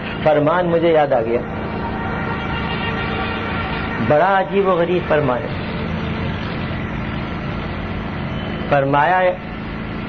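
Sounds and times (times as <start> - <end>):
machine hum and hiss: 1.4 - 10.0.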